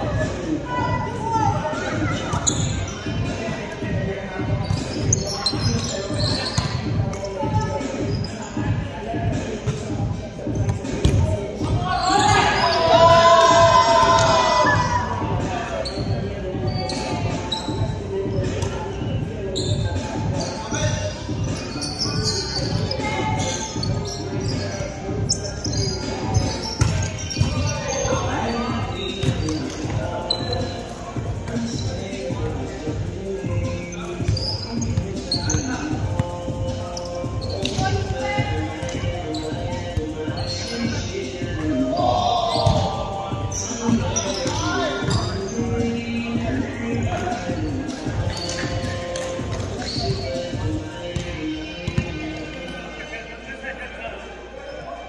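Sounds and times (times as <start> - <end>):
players' voices: 0.0 - 55.0
ball bouncing on hardwood court: 10.7 - 11.2, 51.2 - 52.2.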